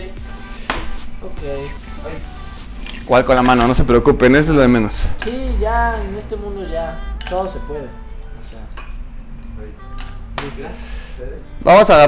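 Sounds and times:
ice cubes clinking against glass: 0:02.8 - 0:03.9.

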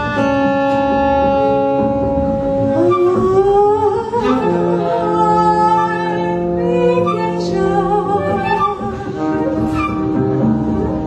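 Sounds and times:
woman singing free jazz vocal: 0:02.7 - 0:10.0.

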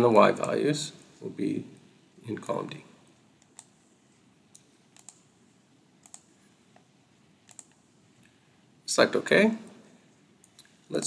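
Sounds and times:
computer mouse clicks: 0:03.4 - 0:03.8, 0:04.5 - 0:05.3, 0:06.0 - 0:07.9.

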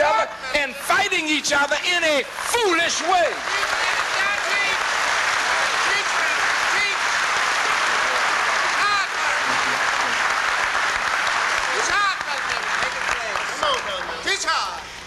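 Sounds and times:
audience applauding: 0:01.0 - 0:14.8.

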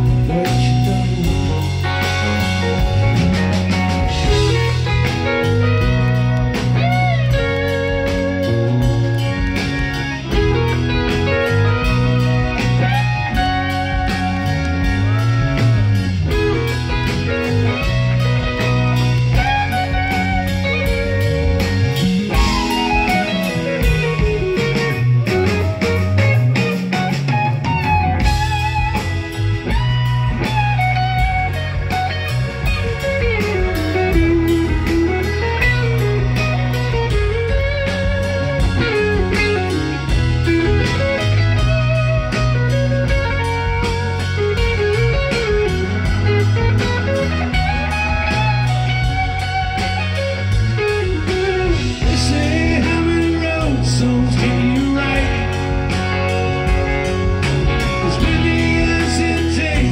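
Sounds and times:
lead electric guitar with bends: 0:00.0 - 0:59.9
live blues-rock band: 0:00.0 - 0:59.9.

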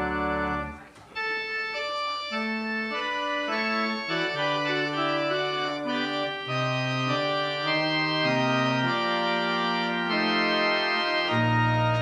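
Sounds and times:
organ playing chords: 0:00.0 - 0:12.0.

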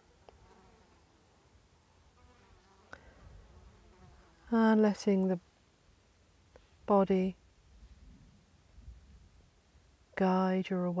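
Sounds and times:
flying insect buzzing: 0:02.1 - 0:04.5.

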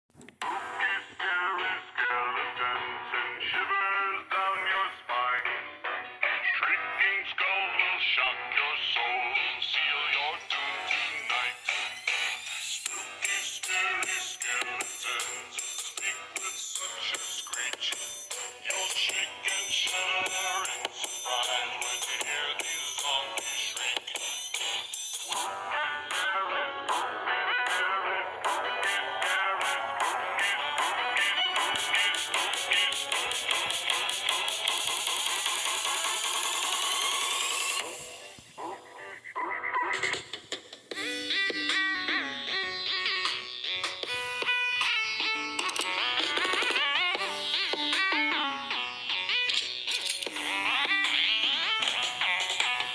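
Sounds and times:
beatboxing with synthetic voice effect: 0:06.2 - 0:52.9.

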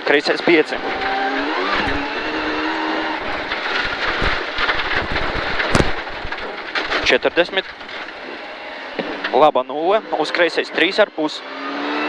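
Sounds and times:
gravel rattling under car: 0:00.0 - 0:10.6
car engine revving: 0:00.5 - 0:12.0
loud bang: 0:00.7 - 0:08.3.

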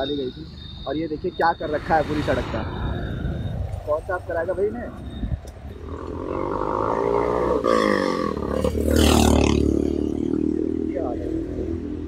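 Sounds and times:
motorcycle engine passing: 0:05.8 - 0:11.9.

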